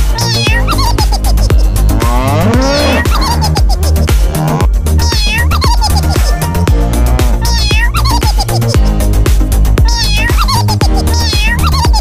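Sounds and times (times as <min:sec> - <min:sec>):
electronic dance music: 0:00.0 - 0:12.0
cat meow sample: 0:00.1 - 0:03.6, 0:04.6 - 0:06.4, 0:07.0 - 0:08.8, 0:09.8 - 0:12.0.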